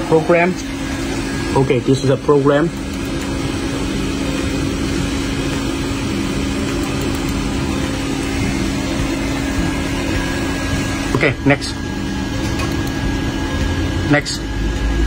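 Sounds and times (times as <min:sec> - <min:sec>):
machine motor humming: 0:00.0 - 0:15.0.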